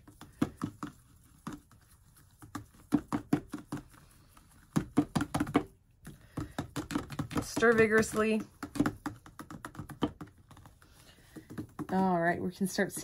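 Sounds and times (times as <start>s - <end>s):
plastic cup tapping on tumbler rim: 2.4s - 4.0s, 4.6s - 12.2s.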